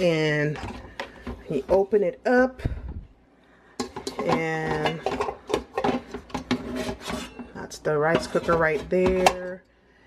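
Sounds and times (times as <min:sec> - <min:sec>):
pot scraping against cooker housing: 0:03.8 - 0:09.6.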